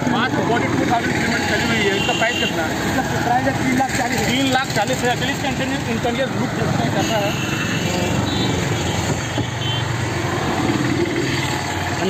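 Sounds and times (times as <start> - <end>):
car and motorbike engines passing: 0.0 - 12.0.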